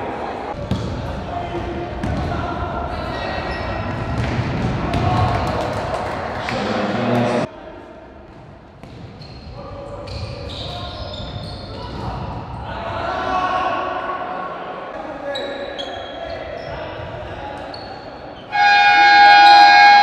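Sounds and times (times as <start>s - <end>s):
ball kicked and bouncing on court: 0.6s - 1.2s, 2.0s - 2.4s, 3.8s - 5.8s, 8.2s - 10.3s.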